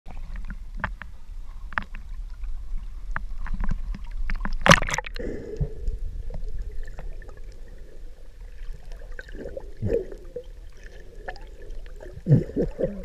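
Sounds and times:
faint steady hum: 0.1 - 13.0
water lapping and splashing: 0.1 - 13.0.

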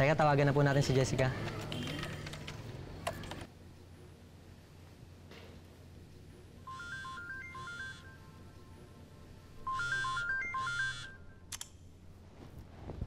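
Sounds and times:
phone ringtone melody: 6.6 - 8.9, 9.6 - 11.4.

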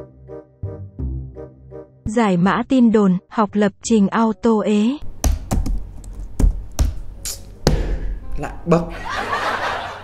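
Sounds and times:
laptop keyboard typing: 5.2 - 7.0.

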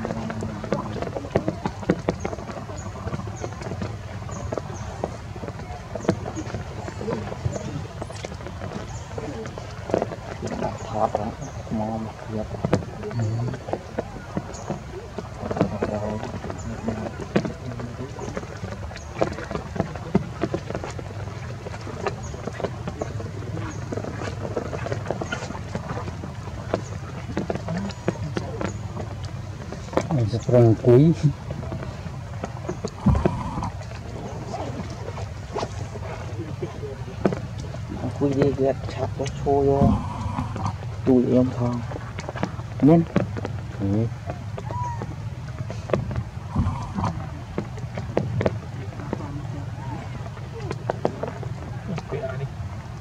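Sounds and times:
wind rumbling on microphone: 0.0 - 53.0.

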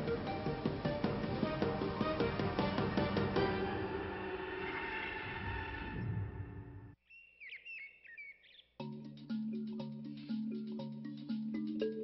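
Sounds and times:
mallet-struck music: 0.0 - 3.8, 8.8 - 12.0
birds chirping and whistling: 7.1 - 8.8.

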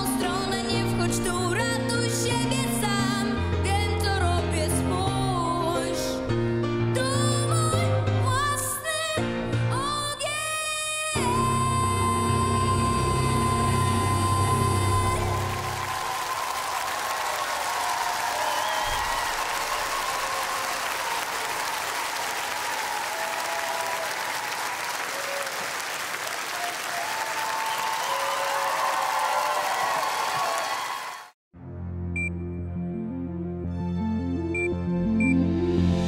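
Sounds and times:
girl singing: 0.0 - 6.1, 7.0 - 15.7
grand piano accompaniment: 0.0 - 10.4, 31.6 - 36.0
audience applauding and cheering: 14.4 - 31.4.

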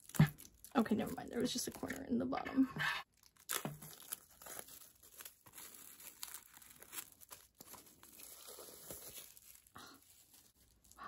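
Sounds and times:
plastic shrink wrap crinkling: 0.0 - 2.2, 3.0 - 11.0.

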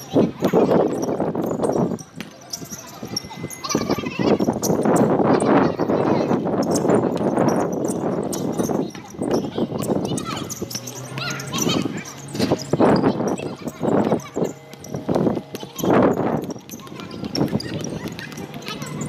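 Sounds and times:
people calling out and shouting: 5.9 - 19.0.

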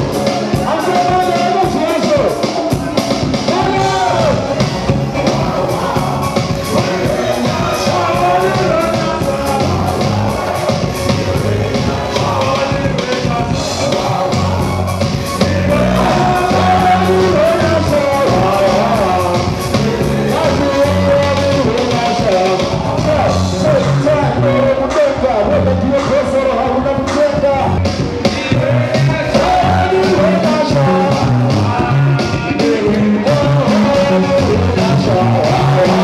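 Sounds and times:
drum beat: 0.0 - 24.4, 27.0 - 36.0
bass guitar: 0.0 - 36.0.

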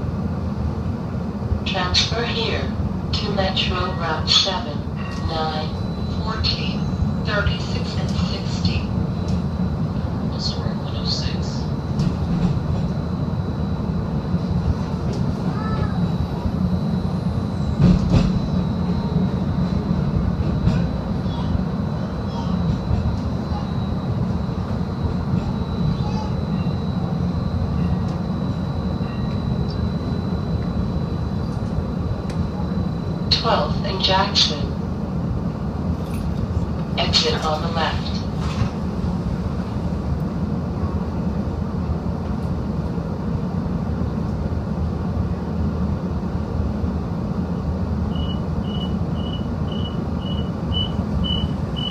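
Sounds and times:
streetcar running rumble: 0.0 - 51.9.

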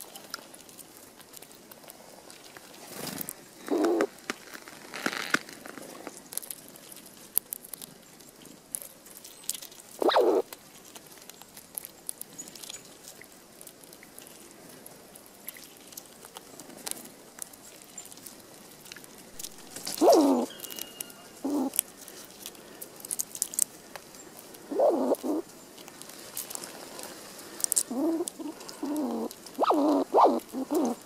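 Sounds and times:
squirrel cracking and chewing seeds: 0.0 - 31.0
squirrel short low call: 10.0 - 10.5, 19.4 - 21.8, 24.7 - 25.4, 27.8 - 31.0.

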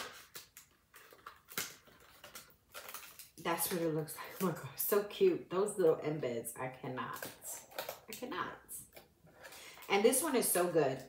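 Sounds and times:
plastic clicks and rustles: 0.0 - 4.6, 7.0 - 9.9.

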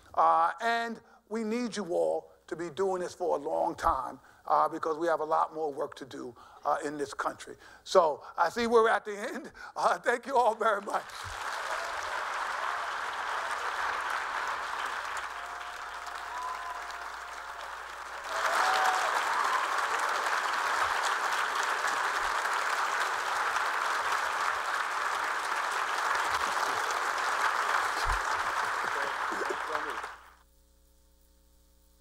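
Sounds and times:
large audience applauding: 10.4 - 30.4.

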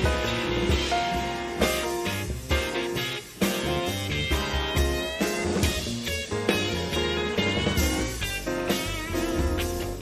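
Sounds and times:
small jazz band playing live: 0.0 - 10.0.

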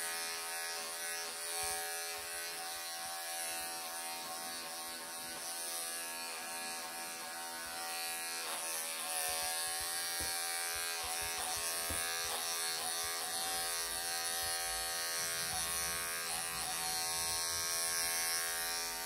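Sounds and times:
electric clippers buzzing: 0.0 - 19.0.

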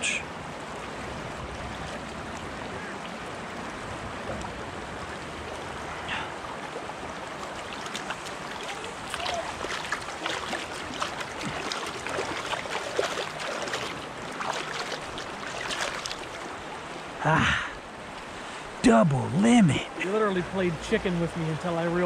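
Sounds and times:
stream water running: 0.0 - 22.0
hands splashing in water: 7.7 - 16.4.

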